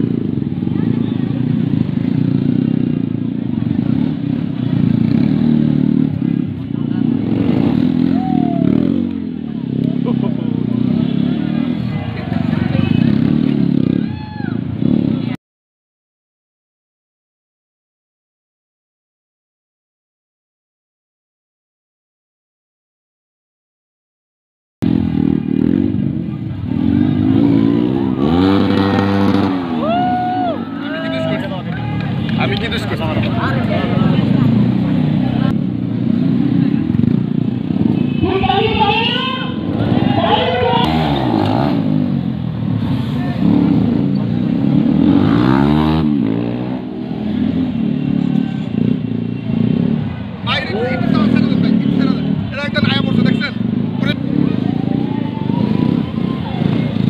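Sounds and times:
crowd chatter: 0.0 - 15.4, 25.0 - 57.0
motorcycle engine revving: 0.0 - 15.4, 24.8 - 57.0.

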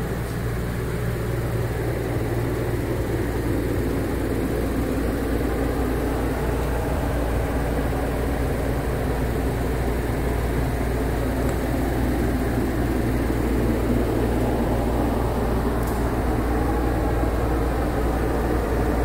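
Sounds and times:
ventilation fans droning: 0.0 - 19.0.

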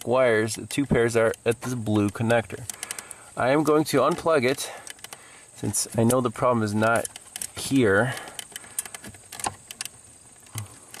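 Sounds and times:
plastic connectors clicking and rattling: 0.4 - 11.0.

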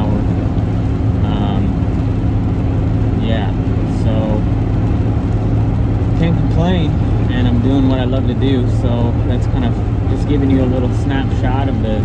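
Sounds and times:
engine drone inside vehicle: 0.0 - 12.0.

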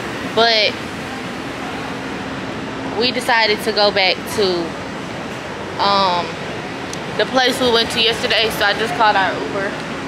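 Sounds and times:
street background hiss: 0.0 - 10.0.

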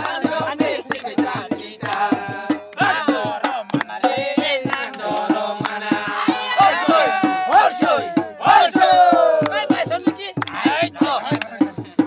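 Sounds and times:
men singing and shouting: 0.0 - 12.0
quick steady drum beat: 0.0 - 12.0.

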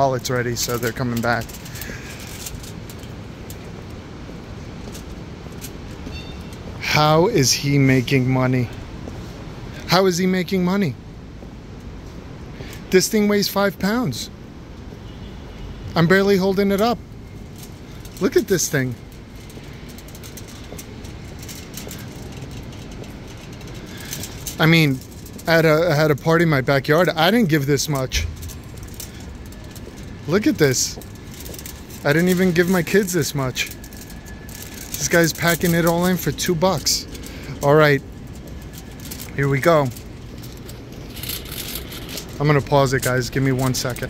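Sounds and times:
foil wrapper crinkling: 0.0 - 3.0, 17.4 - 44.0
faint crackles: 0.0 - 9.9, 15.9 - 44.0
traffic rumble: 0.0 - 44.0.

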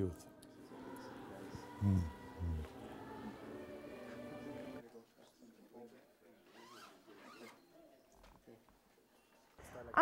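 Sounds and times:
zipper: 6.5 - 7.6.

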